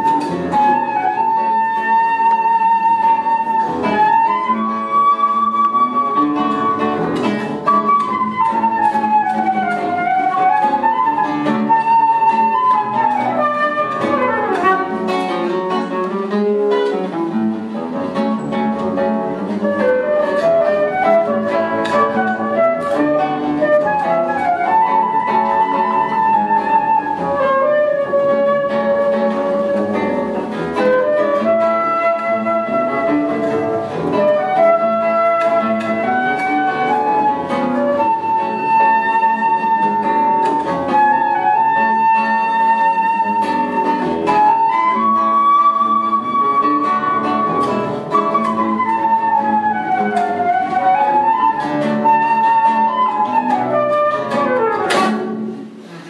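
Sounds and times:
flute melody: 0:00.0 - 0:55.9
plucked guitar chords: 0:00.0 - 0:56.0.

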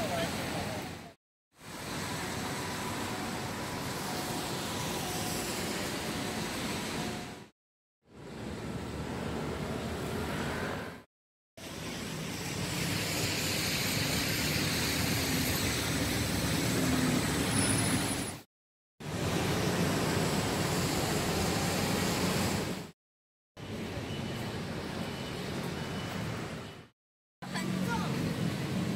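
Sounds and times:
tyres hissing on wet pavement: 0:01.6 - 0:07.2, 0:11.6 - 0:22.9
car engines passing: 0:08.2 - 0:11.0.

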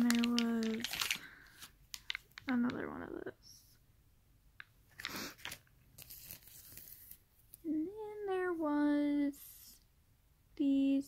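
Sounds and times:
plastic packaging crinkling: 0:00.0 - 0:02.8, 0:05.0 - 0:07.2.

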